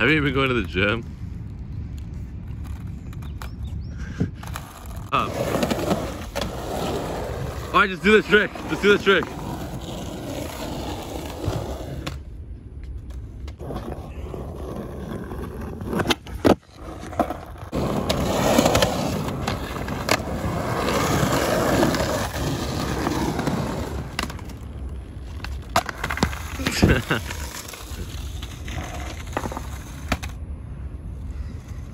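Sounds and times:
skateboard wheels rolling on concrete: 0.0s - 31.9s
skateboard clacking on ground: 25.2s - 30.4s.

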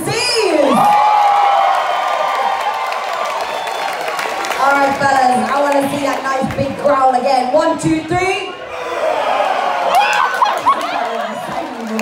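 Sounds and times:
audience cheering and whooping: 0.4s - 5.4s, 8.6s - 12.0s.

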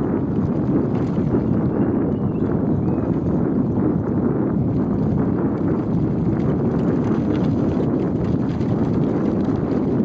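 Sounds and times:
bicycle rolling on asphalt: 0.0s - 10.0s
wind on microphone: 0.0s - 10.0s.

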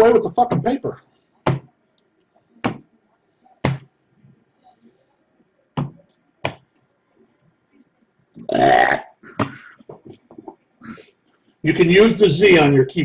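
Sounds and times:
man burping: 8.4s - 9.2s.

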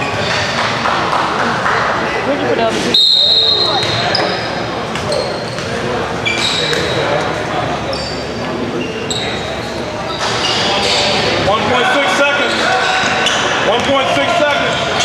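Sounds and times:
people talking: 1.4s - 15.0s
sneakers squeaking on court: 3.4s - 7.1s, 7.8s - 11.3s.

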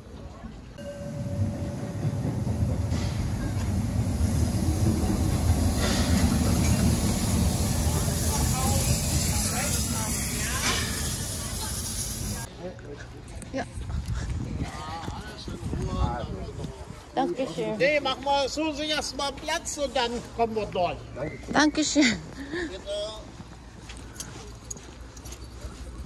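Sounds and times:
steam hissing: 0.8s - 12.5s
steam locomotive rumbling: 0.8s - 12.5s.

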